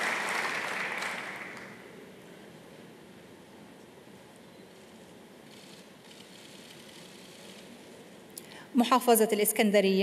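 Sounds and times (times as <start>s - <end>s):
large hall background noise: 0.0s - 10.0s.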